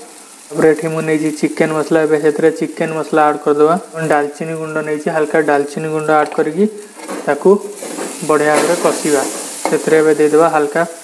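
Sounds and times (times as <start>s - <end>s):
paste sizzling in a pan: 0.0s - 11.0s
person talking: 0.5s - 11.0s.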